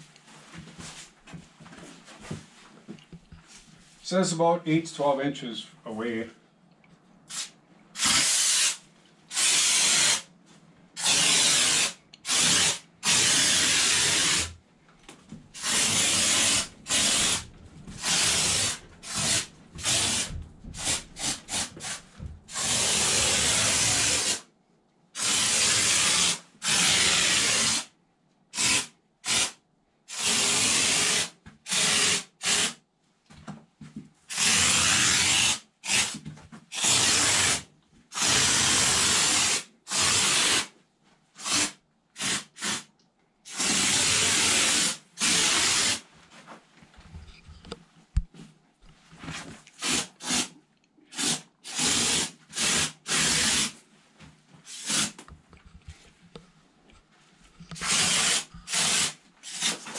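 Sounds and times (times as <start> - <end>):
spray foam gun hissing: 7.3 - 10.3, 11.0 - 14.5, 15.6 - 24.4, 25.2 - 27.9, 28.6 - 29.5, 30.1 - 32.8, 34.3 - 36.2, 36.8 - 37.6, 38.2 - 40.7, 41.4 - 42.9, 43.5 - 46.0, 49.8 - 50.5, 51.1 - 53.8, 54.7 - 55.2, 57.8 - 59.9.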